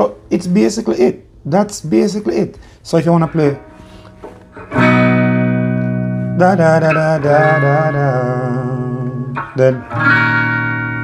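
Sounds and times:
clean electric guitar chords: 0:03.1 - 0:11.0.

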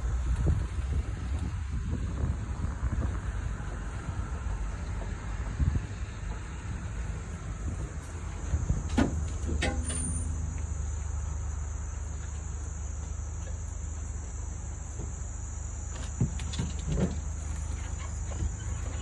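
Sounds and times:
truck engine and tyres rumbling: 0:00.0 - 0:19.0.

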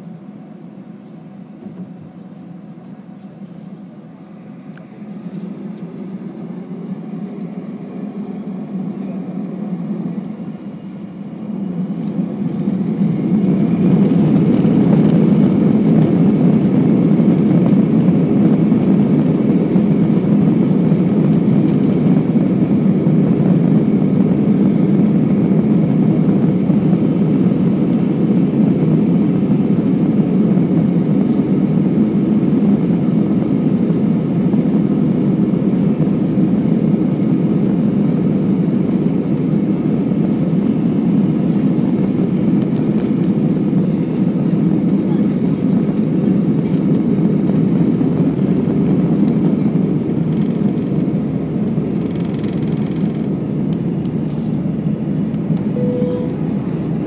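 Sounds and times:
jet engines from inside cabin: 0:00.0 - 0:57.0.

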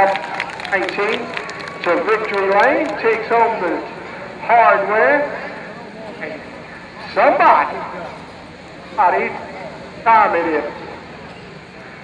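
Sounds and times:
outdoor track noise: 0:00.0 - 0:12.0
man speaking over microphone: 0:01.9 - 0:06.4, 0:07.0 - 0:08.1, 0:09.0 - 0:10.8.

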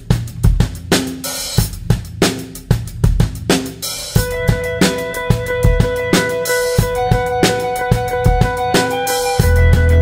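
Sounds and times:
rock drum kit playing: 0:00.0 - 0:10.0.

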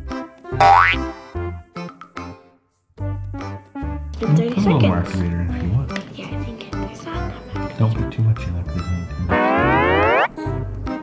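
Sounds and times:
bouncy background music: 0:00.0 - 0:02.4, 0:03.0 - 0:11.0
rising pitch sound effect: 0:09.3 - 0:10.4.

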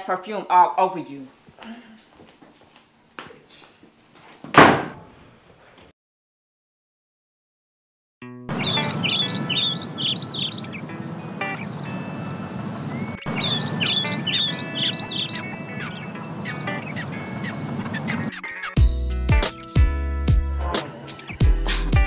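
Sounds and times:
birds chirping and singing: 0:08.5 - 0:18.8.

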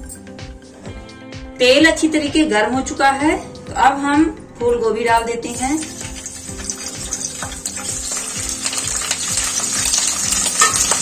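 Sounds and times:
background music with steady beat: 0:00.0 - 0:11.0
vegetables sizzling in hot oil: 0:05.5 - 0:11.0.

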